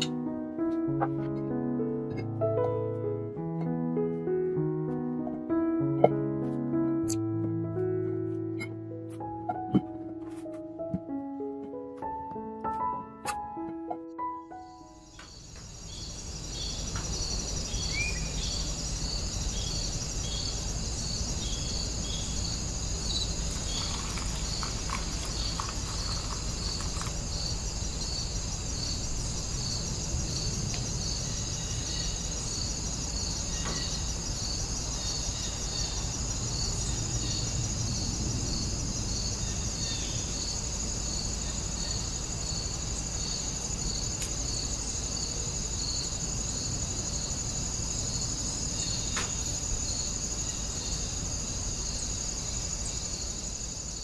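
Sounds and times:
insects chirping: 0:14.2 - 0:54.0.

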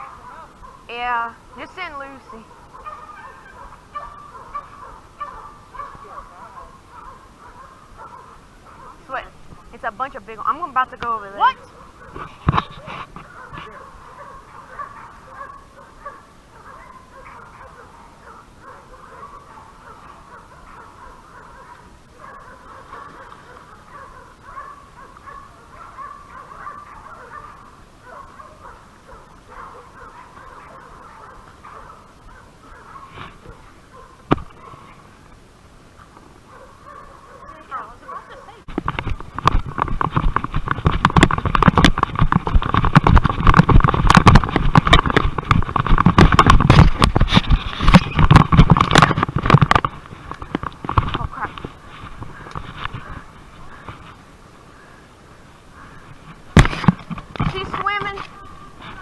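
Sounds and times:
distant dogs barking and baying: 0:00.0 - 0:59.0
footsteps: 0:05.8 - 0:18.0, 0:36.0 - 0:54.3, 0:56.0 - 0:59.0
rustling and knocking through brush: 0:08.0 - 0:16.0, 0:28.2 - 0:35.1, 0:38.6 - 0:54.3, 0:55.9 - 0:59.0.

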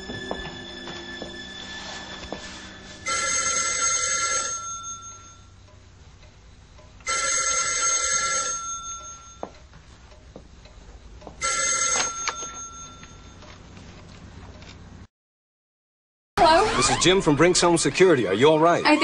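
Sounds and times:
telephone ringing: 0:00.1 - 0:05.6, 0:07.0 - 0:09.5, 0:11.4 - 0:13.6.

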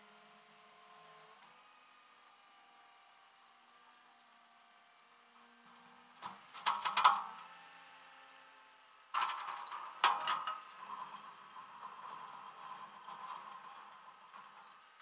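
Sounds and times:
chain clanking on metal deck: 0:09.2 - 0:11.2.

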